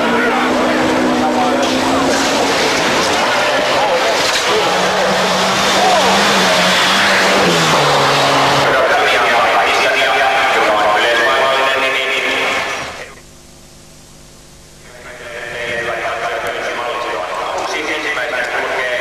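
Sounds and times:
rally car engine passing: 0:00.0 - 0:10.6
crowd noise: 0:00.0 - 0:13.3.

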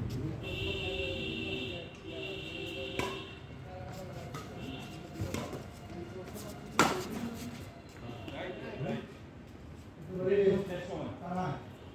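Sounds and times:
badminton racket striking shuttlecock: 0:06.8 - 0:07.1.

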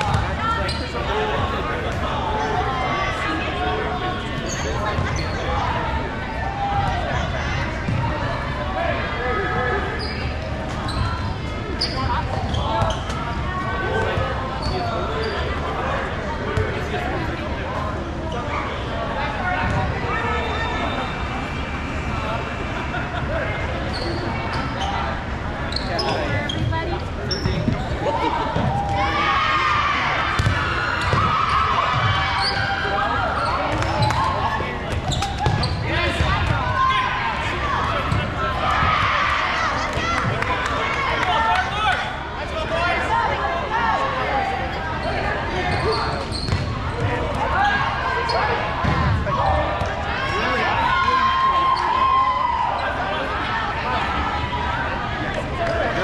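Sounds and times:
players shouting: 0:27.3 - 0:56.0.

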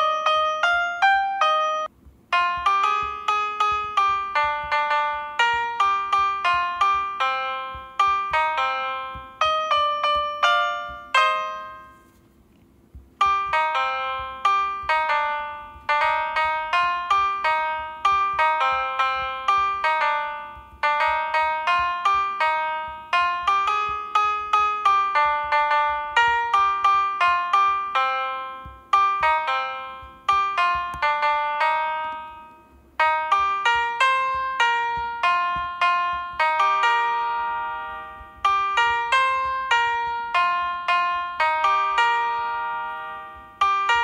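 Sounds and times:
piano melody: 0:00.0 - 0:12.2, 0:12.8 - 0:44.0.

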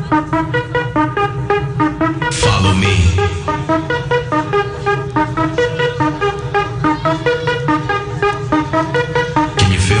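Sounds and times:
steady bass line: 0:00.0 - 0:06.8, 0:08.1 - 0:10.0
synthesizer riff of short notes: 0:01.8 - 0:05.8.

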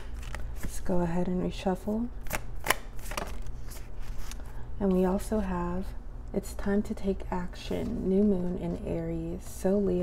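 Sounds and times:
cards shuffled by hand: 0:00.0 - 0:00.8, 0:02.2 - 0:04.6.

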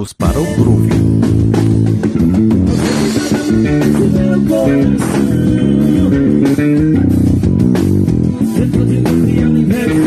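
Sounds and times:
electric bass guitar groove: 0:00.0 - 0:10.0.

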